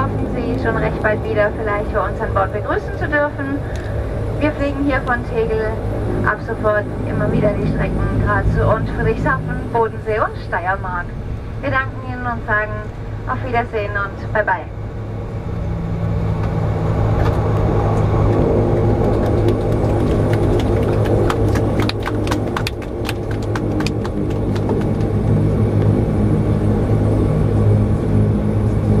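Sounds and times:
turboprop engines droning: 0.0 - 29.0.

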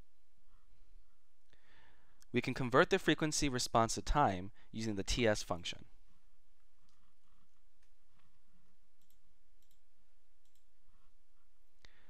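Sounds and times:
low steady room hum: 0.0 - 12.0
computer mouse clicks: 9.0 - 10.7.

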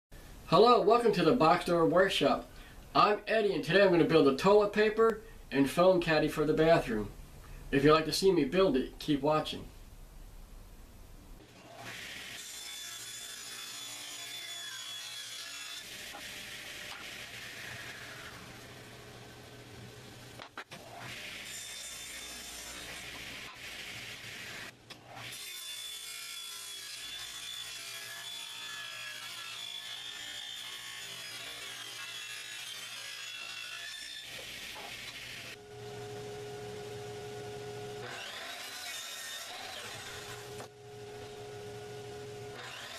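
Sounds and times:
table saw cutting wood: 11.6 - 19.6, 20.7 - 42.9
steady motor hum: 35.6 - 38.2, 39.9 - 42.9.

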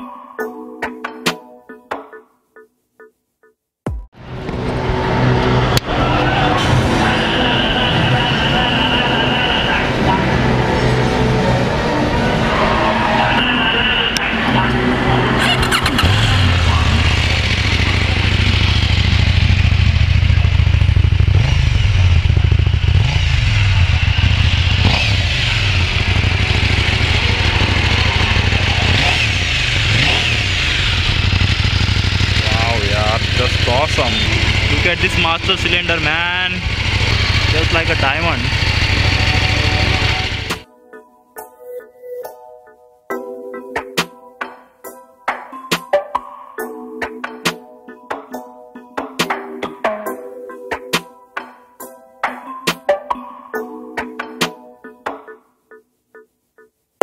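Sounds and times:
hall music: 0.0 - 2.7, 3.9 - 18.5, 32.4 - 55.4
crowd noise: 4.4 - 18.6, 26.0 - 30.4
motorcycle engine starting and revving: 14.4 - 40.6.

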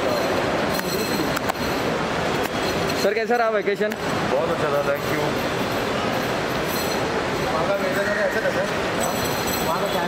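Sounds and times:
loud rumbling airport noise: 0.0 - 10.0.

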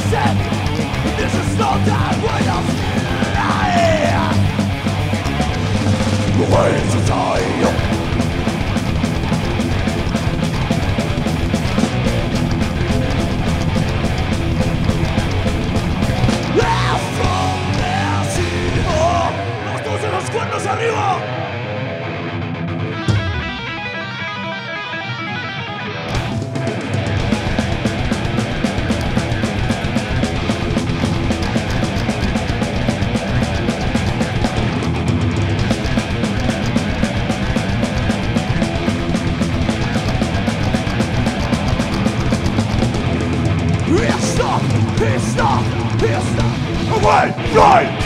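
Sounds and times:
distorted electric guitars: 0.0 - 48.0
heavy metal band playing live: 0.0 - 48.0.

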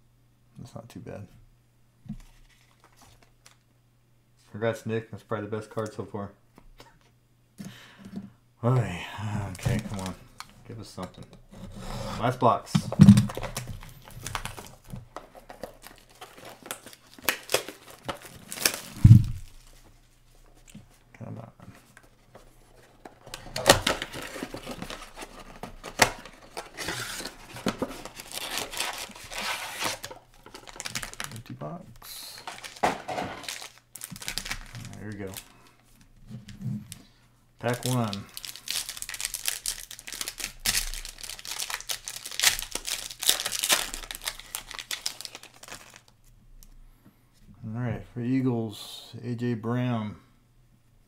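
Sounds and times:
packaging crinkling and tearing: 9.5 - 10.5, 12.9 - 19.8, 23.1 - 31.6, 32.3 - 35.5, 37.6 - 46.2
loud thump: 19.0 - 19.4.

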